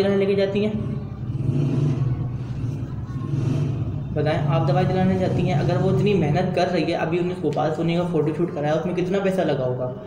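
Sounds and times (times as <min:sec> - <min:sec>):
vehicle engine rumbling: 0:00.0 - 0:08.5.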